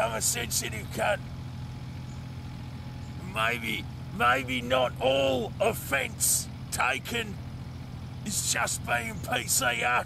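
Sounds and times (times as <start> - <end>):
engine idling hum: 0.0 - 10.0.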